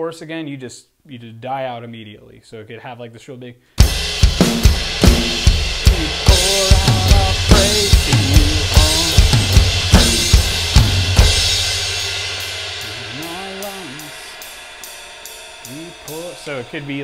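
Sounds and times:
electronic drum kit playing: 3.8s - 17.0s
cymbal ringing: 3.9s - 17.0s.

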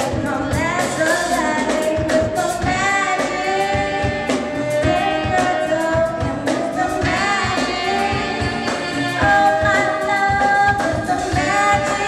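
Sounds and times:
steady drum beat: 0.0s - 12.0s
sung vocals: 0.0s - 12.0s
saxophones: 0.2s - 12.0s.

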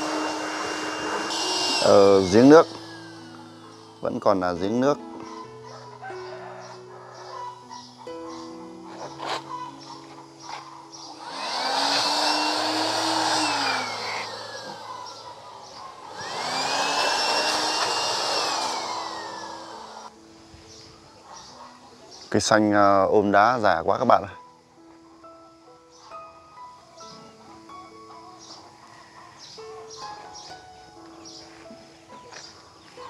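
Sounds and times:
electric blower motor whining: 0.0s - 4.8s, 10.5s - 20.1s
background music: 0.0s - 33.0s.

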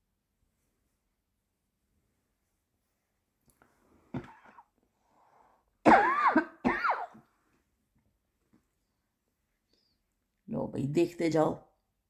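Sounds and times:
person coughing: 5.9s - 7.2s.

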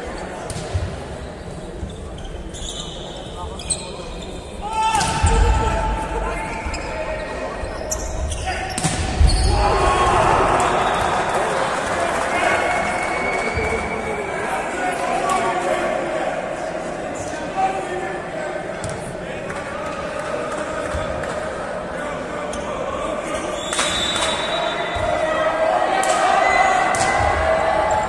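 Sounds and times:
players shouting: 4.6s - 7.6s, 8.3s - 16.7s, 24.2s - 28.0s
spectators cheering: 9.3s - 14.0s, 24.2s - 28.0s.

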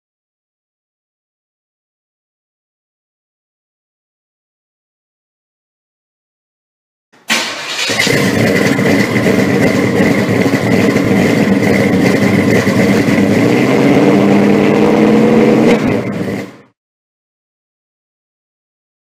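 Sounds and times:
loud engine running: 7.3s - 16.8s.

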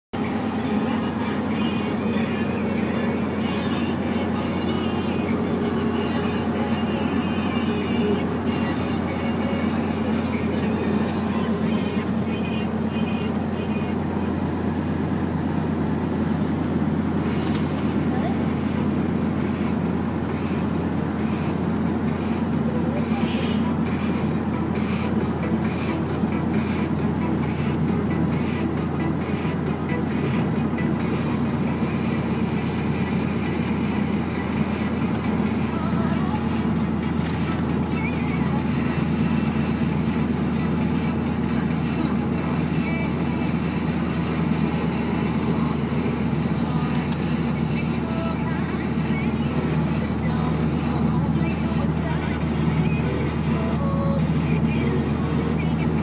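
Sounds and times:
music playing: 0.0s - 56.0s
vehicle drone from inside: 0.0s - 56.0s.

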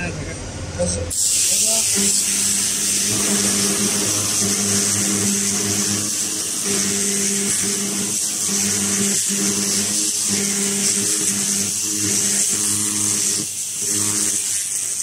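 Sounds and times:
laser cleaning high hiss: 1.1s - 15.0s.

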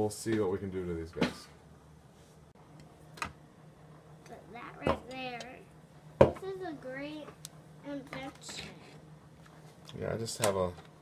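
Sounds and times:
faint steady hum: 0.0s - 11.0s
child speaking: 4.3s - 9.0s
tools knocking on wooden workbench: 6.2s - 6.4s.

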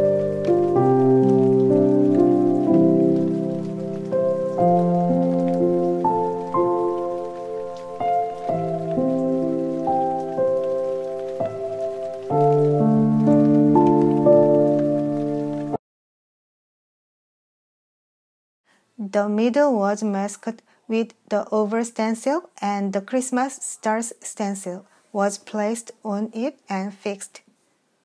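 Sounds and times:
instrumental music sustained chords: 0.0s - 15.8s.

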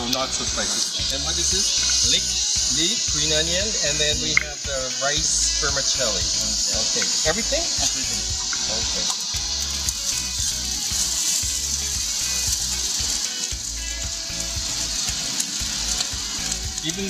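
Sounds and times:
vegetables sizzling in hot oil: 0.0s - 17.0s.

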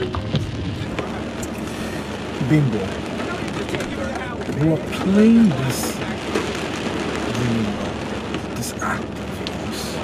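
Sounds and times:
rain on a car roof: 0.0s - 10.0s.

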